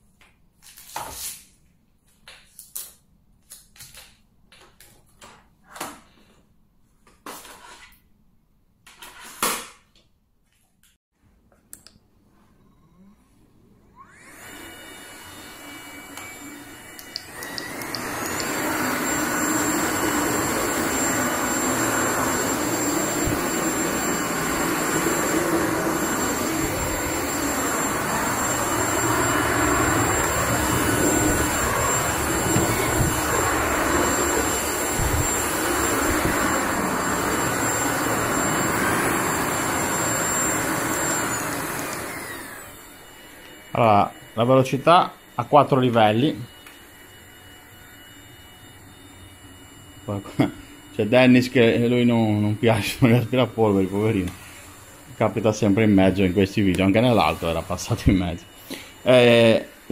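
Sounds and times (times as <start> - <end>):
stick vacuum running on hard floor: 14.1 - 44.0, 50.1 - 59.9.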